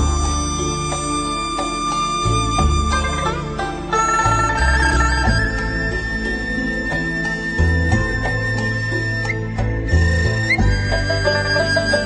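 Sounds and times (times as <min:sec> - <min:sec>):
low bass line: 0:00.0 - 0:12.0.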